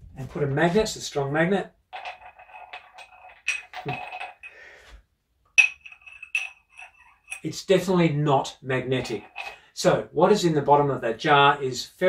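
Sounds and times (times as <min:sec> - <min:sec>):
glass clinking and ringing: 0:02.0 - 0:04.6, 0:05.6 - 0:07.5, 0:09.1 - 0:09.6.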